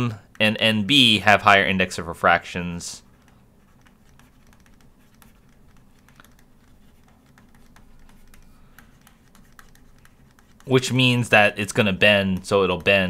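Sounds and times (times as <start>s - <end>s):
low steady hum: 0.0s - 13.0s
stylus clicking on tablet: 3.1s - 10.8s.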